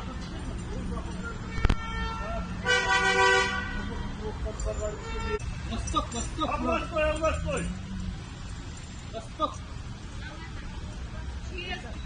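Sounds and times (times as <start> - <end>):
car horn blast: 1.5 - 3.9.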